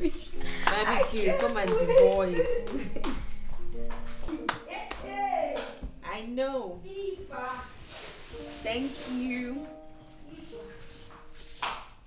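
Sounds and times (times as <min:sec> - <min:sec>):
woman clapping: 0:00.6 - 0:03.2, 0:04.4 - 0:05.8.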